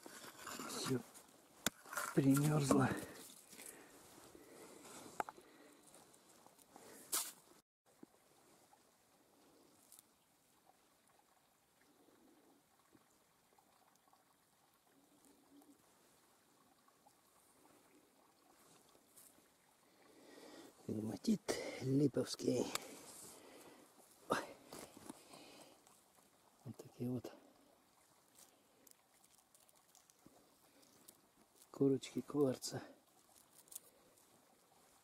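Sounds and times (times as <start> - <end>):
rocks clicking on frozen ground: 33.2 - 34.0.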